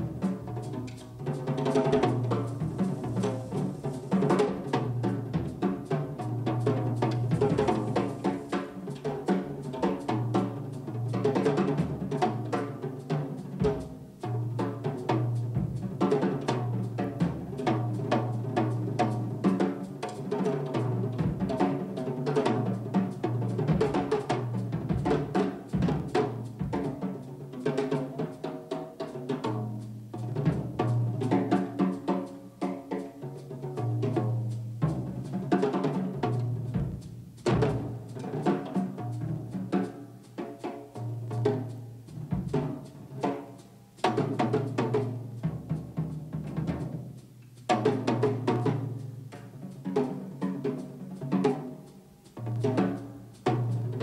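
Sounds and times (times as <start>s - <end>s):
jazz drum solo: 0.0s - 54.0s.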